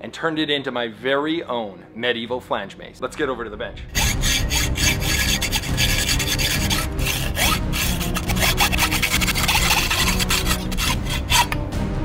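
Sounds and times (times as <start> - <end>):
hacksaw cutting steel pipe: 4.0 - 11.6.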